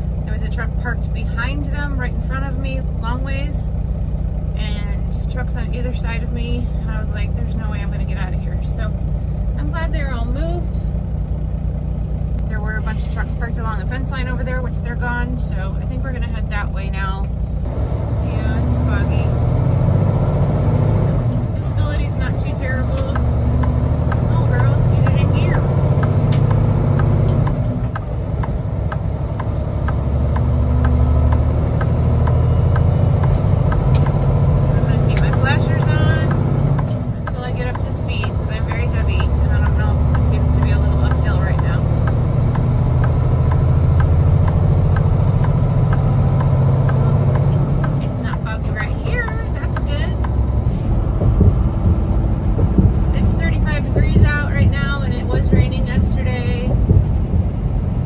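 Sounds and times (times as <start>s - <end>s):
diesel truck engine drone: 0.0s - 58.0s.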